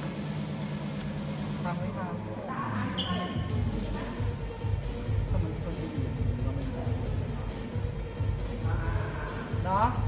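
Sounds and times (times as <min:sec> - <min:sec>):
steady low hum: 0:00.0 - 0:10.0
faint indistinct talking: 0:01.6 - 0:10.0.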